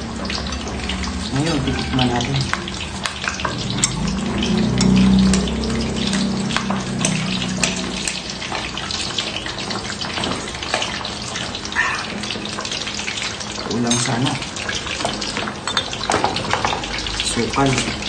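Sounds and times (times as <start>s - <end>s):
low hum: 0.0s - 9.6s
hot oil hissing and crackling: 0.0s - 18.0s.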